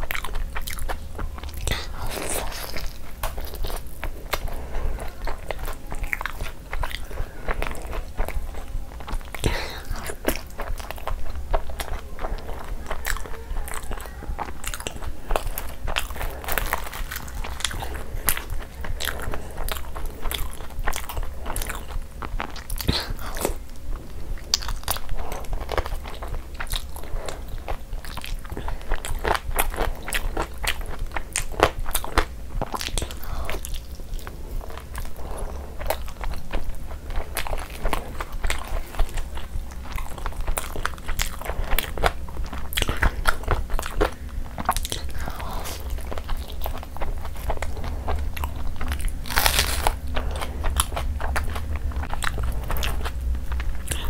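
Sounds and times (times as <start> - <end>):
person chewing food: 0.0 - 54.0.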